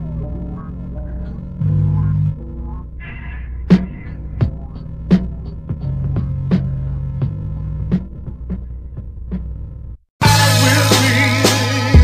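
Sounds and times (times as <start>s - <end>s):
held bass note: 0.0s - 7.9s
low hum: 0.0s - 10.0s
hip-hop drum beat: 3.7s - 9.6s, 10.2s - 12.0s.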